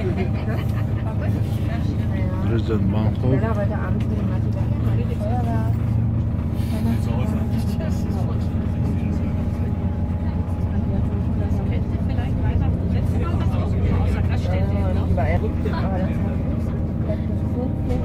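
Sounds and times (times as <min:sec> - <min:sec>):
faint voices: 0:00.0 - 0:18.0
train rumbling on track: 0:00.0 - 0:18.0.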